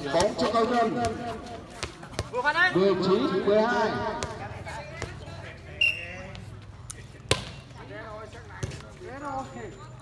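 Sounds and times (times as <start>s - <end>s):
referee's whistle: 5.8s - 6.2s.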